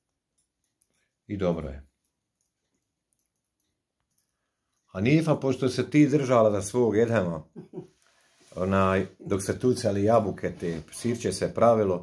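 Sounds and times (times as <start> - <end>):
knitting needles clicking: 0.0 - 5.2.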